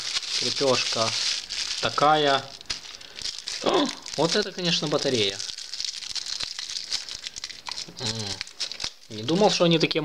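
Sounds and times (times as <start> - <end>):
plastic bag crinkling: 0.0 - 9.8.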